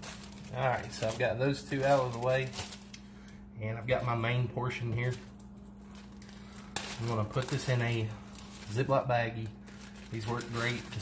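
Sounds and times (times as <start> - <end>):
faint steady hum: 0.0 - 11.0
plastic bag rustling: 0.0 - 11.0.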